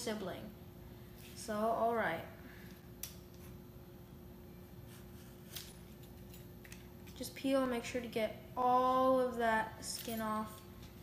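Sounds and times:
steady faint hum: 0.0 - 11.0.

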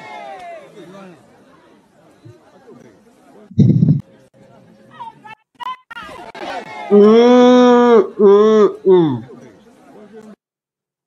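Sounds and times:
faint chatter of voices: 0.0 - 10.4.

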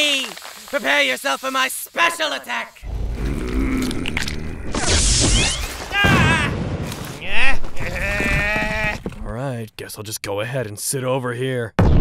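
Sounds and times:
wordless grunts: 2.9 - 5.0
cartoon crash of smashing ground: 4.7 - 7.8
loud yell: 5.9 - 6.6.

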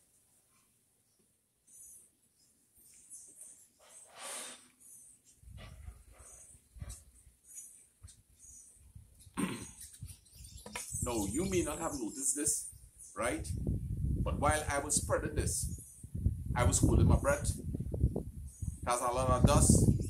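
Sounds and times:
man talking: 11.0 - 13.6, 14.3 - 15.7, 16.6 - 17.6, 18.8 - 19.9.

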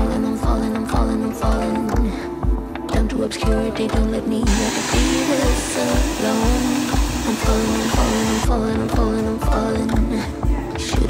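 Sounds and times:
background music with a beat: 0.0 - 11.0
hair dryer blowing: 4.5 - 8.5.

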